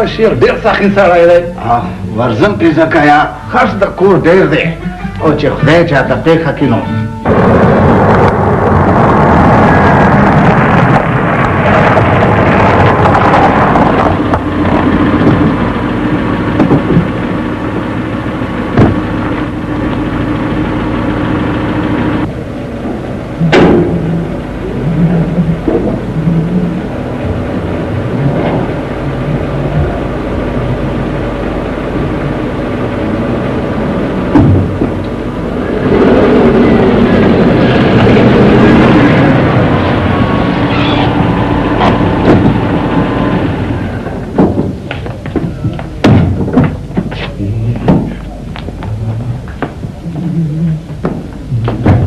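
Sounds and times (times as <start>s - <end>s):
car engine running: 7.2s - 52.0s.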